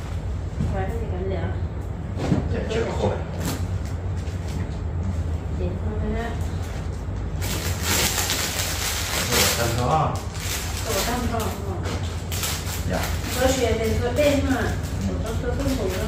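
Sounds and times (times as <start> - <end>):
steady low hum: 0.0 - 16.0
plastic bag crinkling: 7.3 - 16.0.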